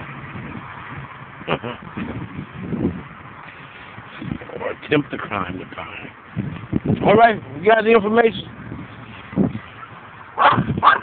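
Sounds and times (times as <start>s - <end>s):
dog barking: 10.4s - 11.0s.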